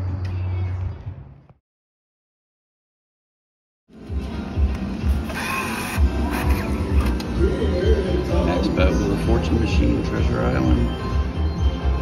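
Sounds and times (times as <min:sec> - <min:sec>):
background music with steady beat: 0:03.9 - 0:12.0.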